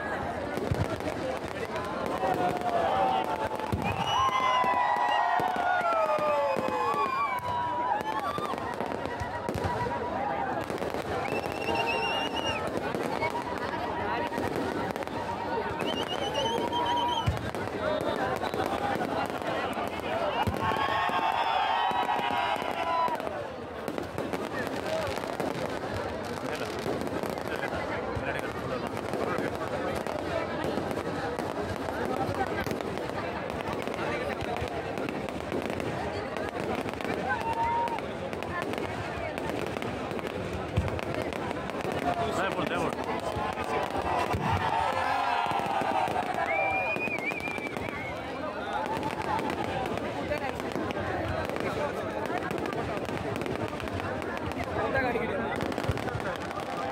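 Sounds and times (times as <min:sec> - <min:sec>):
crowd talking and shouting: 0:00.0 - 0:56.9
fireworks bangs: 0:00.0 - 0:56.9
fireworks crackling: 0:00.0 - 0:56.9.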